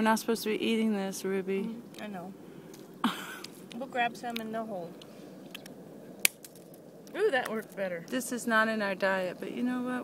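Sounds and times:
walnut shell cracking: 2.8 - 7.8.

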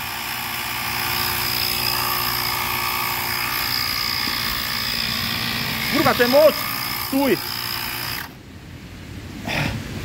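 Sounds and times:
small compressor whining: 0.0 - 8.4.

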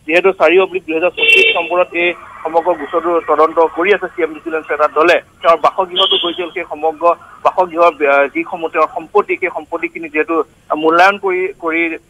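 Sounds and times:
person talking over telephone line: 0.0 - 12.0.

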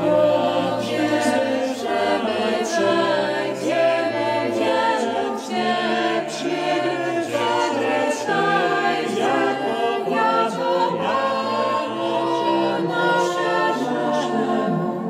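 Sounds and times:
choir singing a cappella: 0.0 - 15.0.

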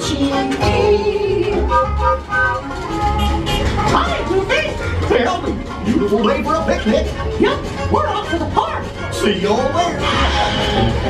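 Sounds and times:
upbeat cartoon music with bass beat: 0.0 - 11.0.

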